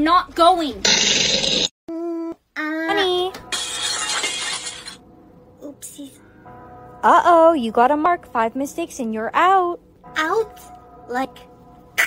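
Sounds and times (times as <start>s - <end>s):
glass shattering: 3.5s - 5.0s.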